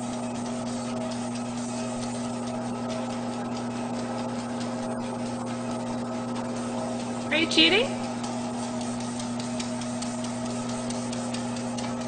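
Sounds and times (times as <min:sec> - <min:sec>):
electric motor hum: 0:00.0 - 0:12.0.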